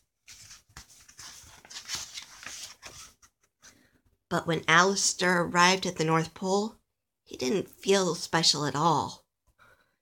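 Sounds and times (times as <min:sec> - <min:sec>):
paper page rustling: 0:00.0 - 0:03.9.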